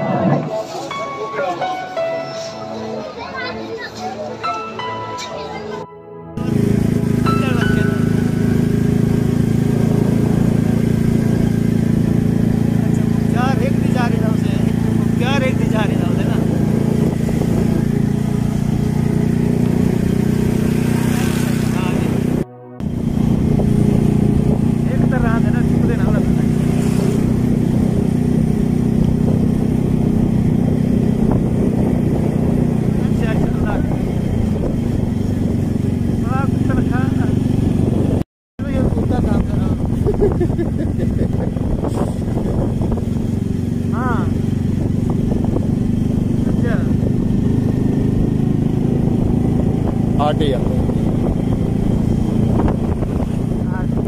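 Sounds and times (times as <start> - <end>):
motorcycle engine running: 6.4 - 54.0.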